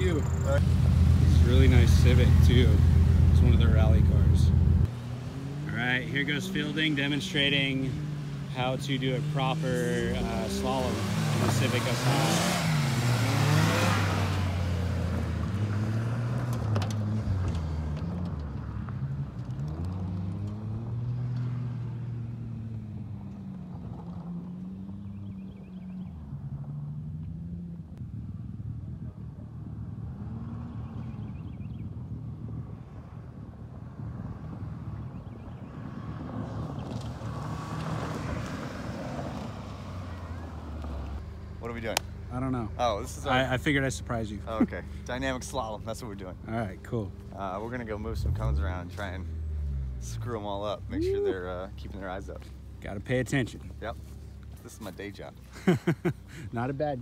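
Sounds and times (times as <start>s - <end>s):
rally car engine revving: 0.0s - 27.8s, 36.0s - 54.1s.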